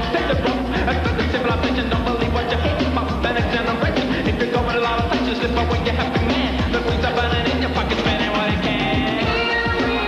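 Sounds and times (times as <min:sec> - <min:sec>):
dance-pop song with male vocals: 0:00.0 - 0:10.0.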